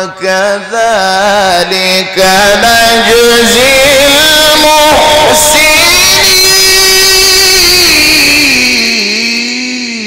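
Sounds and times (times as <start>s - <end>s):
man reciting a long melodic note: 0.0s - 10.0s.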